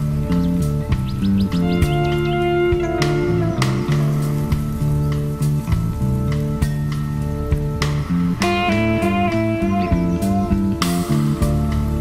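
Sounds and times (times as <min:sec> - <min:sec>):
bass line: 0:00.0 - 0:12.0
rock music: 0:00.0 - 0:12.0.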